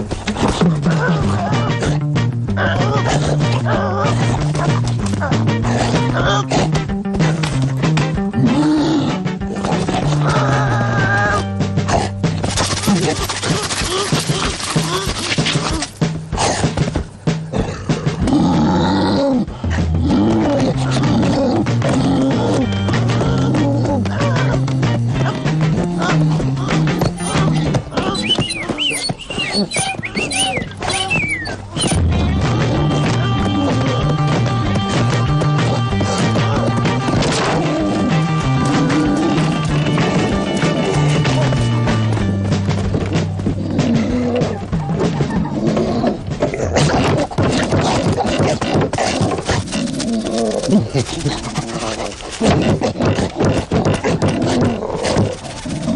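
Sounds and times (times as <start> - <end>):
cartoon lion growling and grunting: 0.0 - 7.4, 8.2 - 16.8, 17.4 - 28.9, 43.1 - 55.9
background music: 0.0 - 55.9
roaring wavering cartoon animal calls: 26.0 - 32.9.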